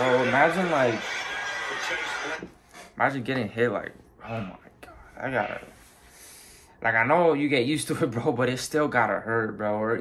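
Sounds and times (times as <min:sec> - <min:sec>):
crowd noise: 0:00.0 - 0:02.5.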